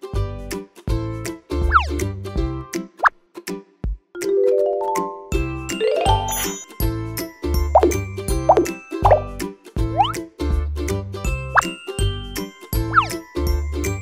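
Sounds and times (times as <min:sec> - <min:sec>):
bouncy children's music: 0:00.0 - 0:14.0
cartoon plop sound effects: 0:07.8 - 0:09.3, 0:10.0 - 0:10.2.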